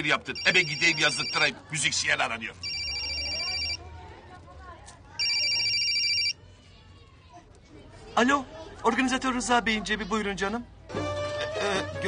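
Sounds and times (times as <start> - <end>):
mobile phone ringtone: 0.3 - 1.5, 2.6 - 3.8, 5.2 - 6.4.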